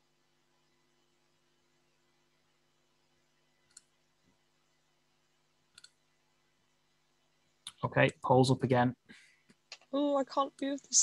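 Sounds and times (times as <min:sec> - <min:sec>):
computer mouse clicks: 0:03.6 - 0:03.9, 0:05.7 - 0:06.0.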